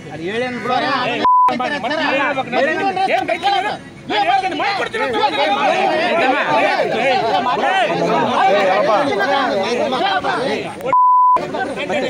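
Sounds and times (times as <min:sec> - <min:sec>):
people arguing loudly: 0:00.1 - 0:12.0.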